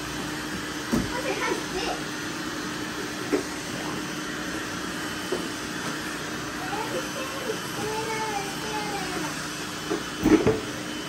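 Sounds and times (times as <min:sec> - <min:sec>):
robot vacuums whirring: 0:00.0 - 0:11.0.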